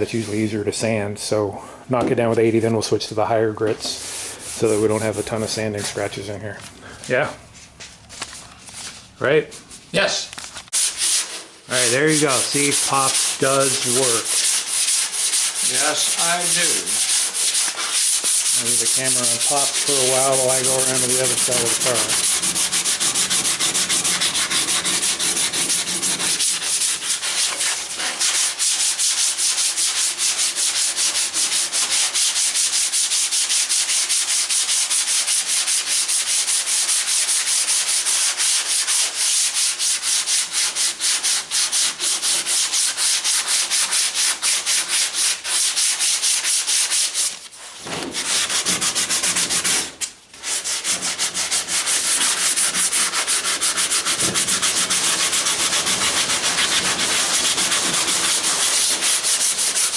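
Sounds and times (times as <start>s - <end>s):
sanding block rubbing on metal: 3.8s - 6.2s, 10.7s - 59.9s.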